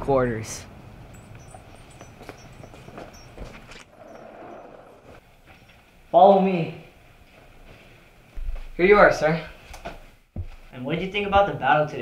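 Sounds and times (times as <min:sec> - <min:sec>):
footsteps on a hard floor: 0:01.5 - 0:03.8, 0:07.2 - 0:08.8, 0:09.5 - 0:11.6.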